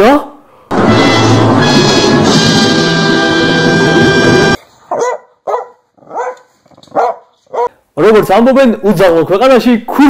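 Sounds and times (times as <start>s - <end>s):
dog barking muffled: 4.9s - 7.7s.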